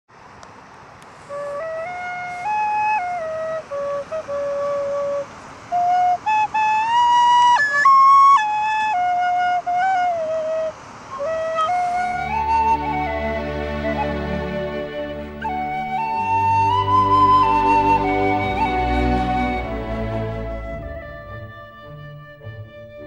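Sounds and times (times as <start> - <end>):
faint steady hiss: 0.1 - 23.0
slow whistle flute melody: 1.3 - 23.0.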